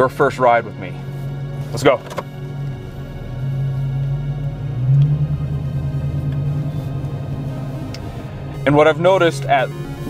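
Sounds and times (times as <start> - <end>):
background music: 0.0 - 10.0
car engine accelerating: 0.0 - 10.0.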